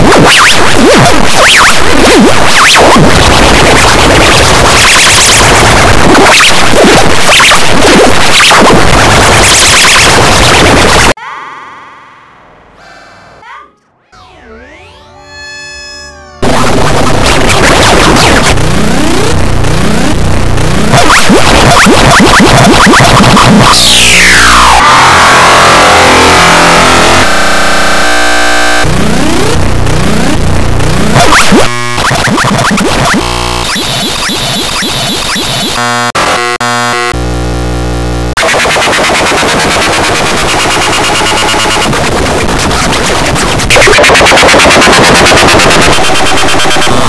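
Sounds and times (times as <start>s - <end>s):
harsh distorted noise: 0.0s - 13.4s, 15.2s - 47.0s
rising and falling pitch sweeps: 14.0s - 17.2s.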